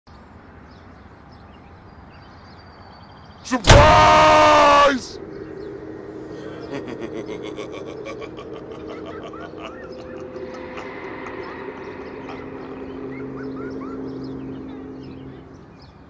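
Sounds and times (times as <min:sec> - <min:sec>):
low steady drone: 0:03.6 - 0:16.0
short chirping calls: 0:04.6 - 0:16.0.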